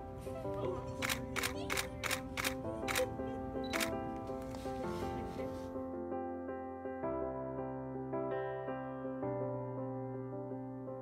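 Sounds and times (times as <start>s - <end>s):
soft music of held notes: 0.0s - 11.0s
camera shutter clicking: 1.0s - 3.1s, 3.7s - 4.0s.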